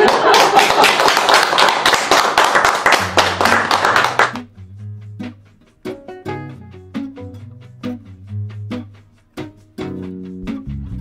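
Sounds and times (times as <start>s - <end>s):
people clapping: 0.0s - 4.5s
low steady music tones: 4.4s - 11.0s.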